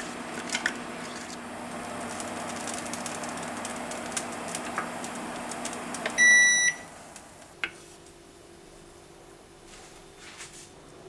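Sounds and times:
induction hob humming: 0.0s - 10.2s.

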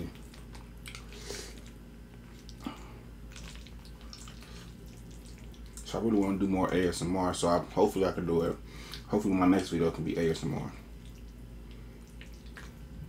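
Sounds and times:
wet chewing mouth sounds: 0.0s - 5.9s, 10.8s - 13.0s.

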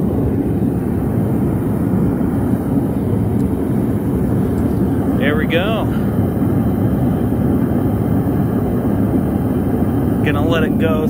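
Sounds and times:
gas burners rushing: 0.0s - 11.0s.

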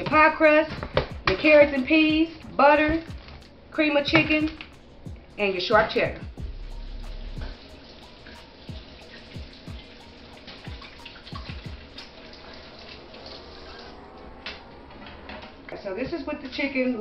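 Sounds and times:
quiet background music: 0.0s - 17.0s
faucet water splashing: 7.4s - 15.6s.

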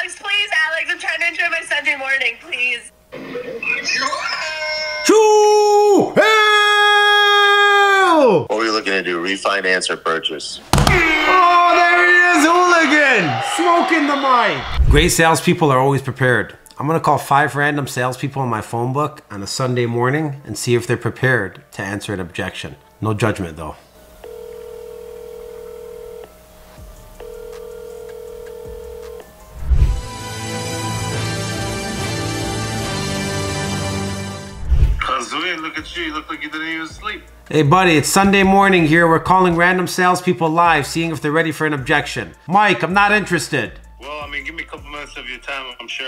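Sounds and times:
music: 10.8s - 46.0s
telephone ringback tone: 24.2s - 29.4s.

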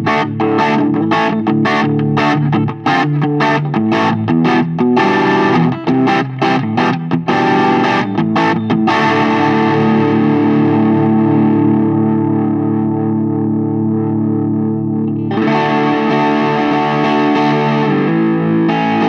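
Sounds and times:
overdriven electric guitar chords: 0.0s - 19.0s.

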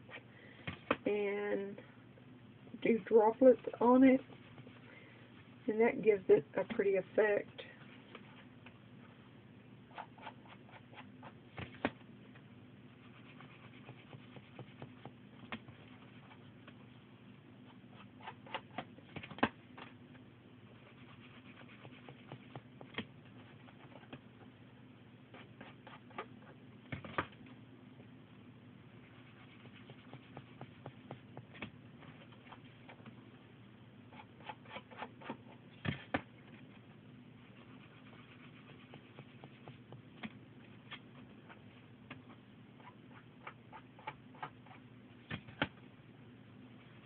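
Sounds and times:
faint low hum: 0.0s - 47.0s.

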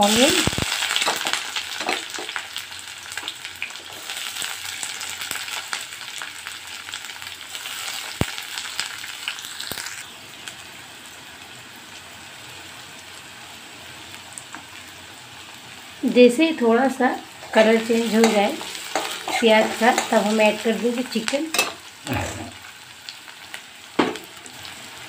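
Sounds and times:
onions sizzling in oil: 0.0s - 25.0s
wooden spatula scraping: 17.4s - 20.3s.

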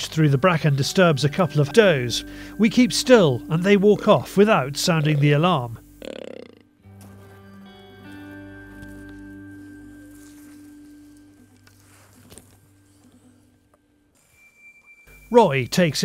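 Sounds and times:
soft sustained chord music: 0.0s - 6.0s, 6.7s - 16.0s
faint thin high tone: 14.2s - 15.4s.

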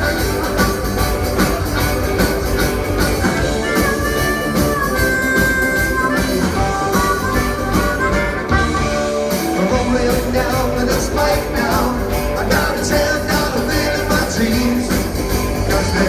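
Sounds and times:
harmonica solo: 0.0s - 9.9s
rock band playing boogie shuffle: 0.0s - 16.0s.

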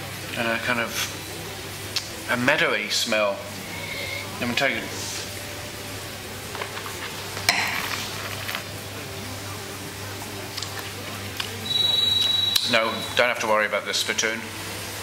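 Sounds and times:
wine being sipped: 3.6s - 4.4s
glass clinking onto table: 7.5s - 8.0s.

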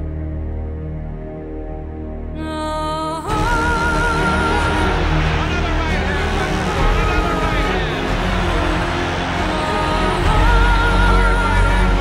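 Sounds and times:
crowd cheering and shouting: 3.3s - 12.0s.

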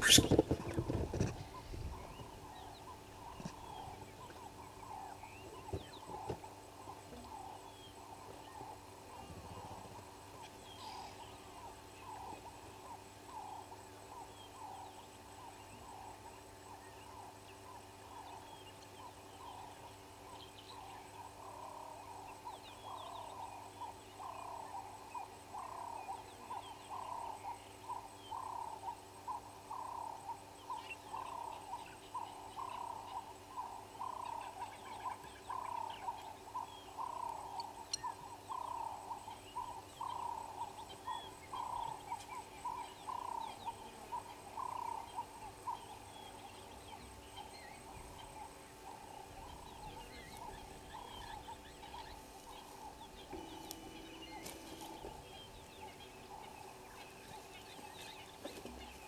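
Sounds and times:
animal call: 0.0s - 0.7s
faint bird chirps: 0.0s - 59.0s.

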